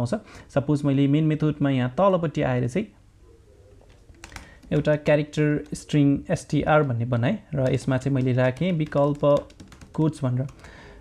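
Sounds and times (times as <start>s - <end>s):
computer keyboard keystrokes: 4.1s - 5.9s, 7.6s - 10.7s.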